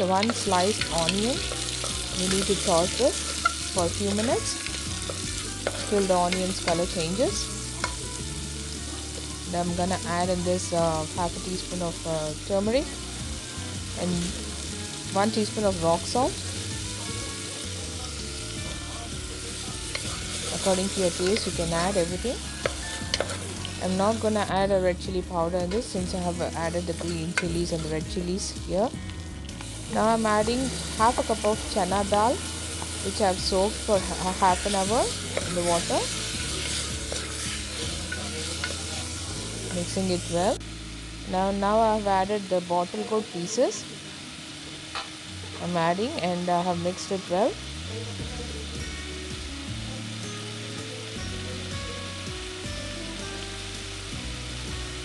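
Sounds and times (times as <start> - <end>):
food sizzling in hot oil: 0.0 - 55.0
wooden spatula scraping pot: 34.4 - 39.1.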